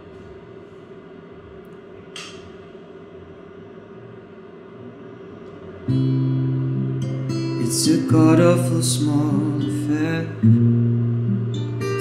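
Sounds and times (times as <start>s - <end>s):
acoustic guitar chord strummed: 5.8s - 12.0s.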